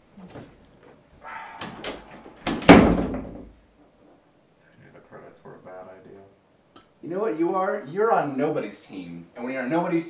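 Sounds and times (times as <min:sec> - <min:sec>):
door knocks and rattling: 0:01.6 - 0:03.6
door slamming shut: 0:01.6 - 0:03.6.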